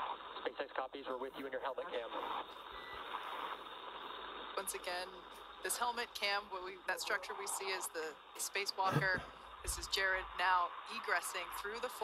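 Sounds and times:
radio channel hiss: 0.0 - 12.0.

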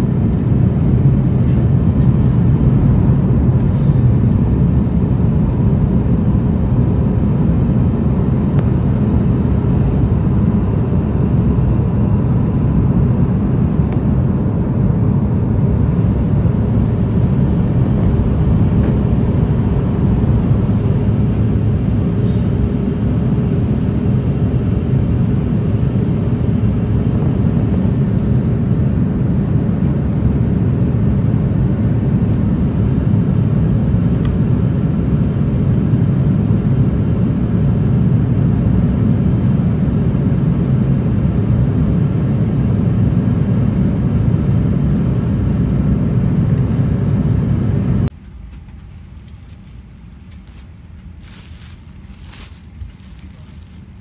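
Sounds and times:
airliner cabin engine noise: 0.0 - 54.0.

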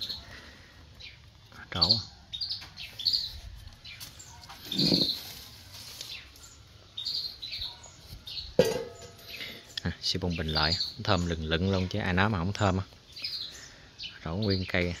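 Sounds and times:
small birds chirping: 0.0 - 15.0.

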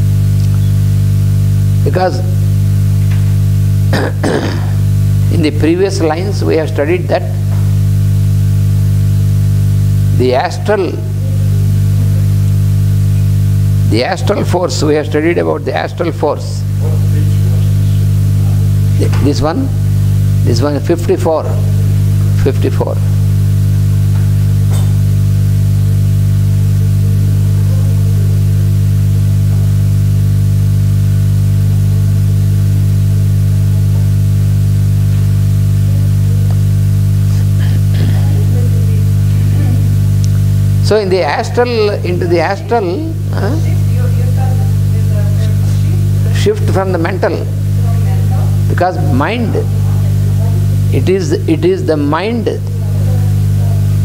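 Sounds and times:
electrical mains hum: 0.0 - 54.0.

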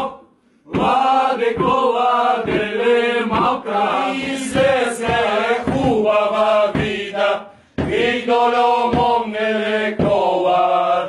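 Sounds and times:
group singing a carol: 0.0 - 11.0.

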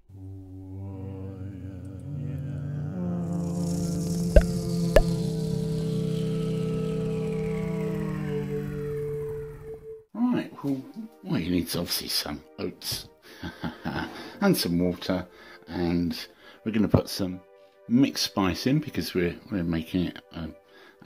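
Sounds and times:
synthesized droning tones: 0.0 - 10.1
hiss sweeping: 3.3 - 9.8.

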